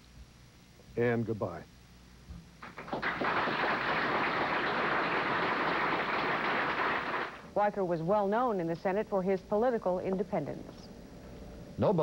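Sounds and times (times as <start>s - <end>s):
crowd applauding: 2.6s - 7.4s.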